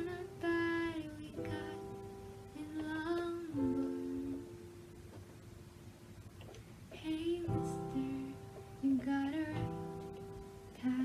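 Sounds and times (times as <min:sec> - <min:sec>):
digital keyboard chord: 0:00.0 - 0:06.2.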